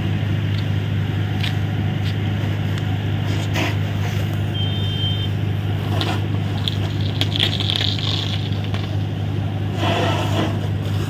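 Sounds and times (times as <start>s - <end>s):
engine droning: 0.0s - 11.0s
short high beep: 4.5s - 5.4s.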